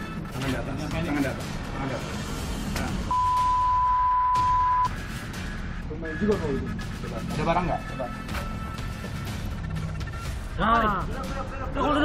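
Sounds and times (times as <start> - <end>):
background music: 0.0 - 12.0
censor bleep: 3.1 - 4.9.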